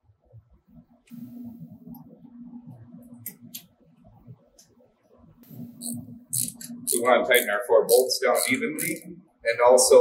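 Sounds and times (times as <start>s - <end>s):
steady low hum: 0.0s - 10.0s
metallic clicks and scrapes: 5.5s - 9.0s.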